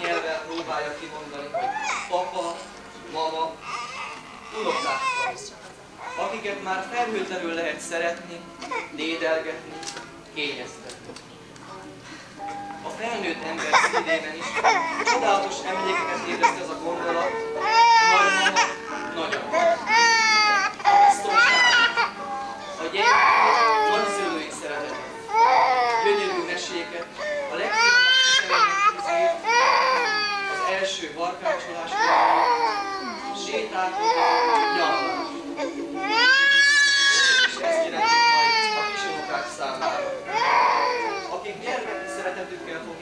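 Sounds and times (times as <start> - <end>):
toddler crying: 1.5 - 2.7, 3.6 - 6.4, 8.6 - 9.0, 13.6 - 41.4.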